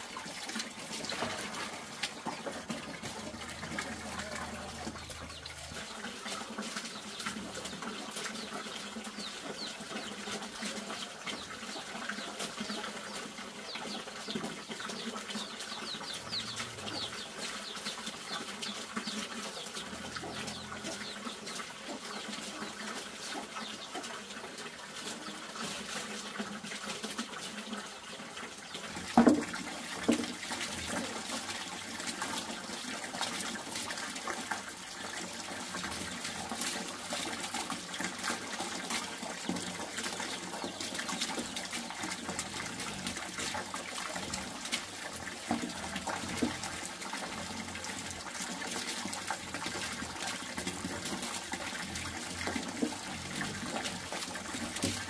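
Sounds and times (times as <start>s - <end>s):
small clicks and splashes: 0.0s - 13.3s, 13.9s - 55.0s
running trickling water: 0.0s - 55.0s.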